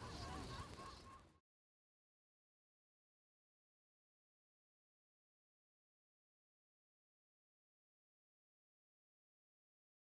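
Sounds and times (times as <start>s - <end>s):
bird calls: 0.0s - 1.4s.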